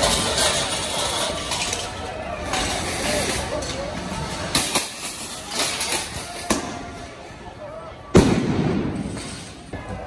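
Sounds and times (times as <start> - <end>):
rolling echo: 8.0 - 10.0
loud explosive bang: 8.1 - 9.3.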